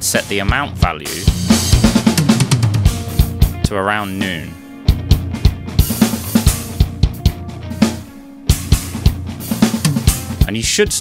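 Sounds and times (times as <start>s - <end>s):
drum kit playing a beat: 0.0s - 11.0s.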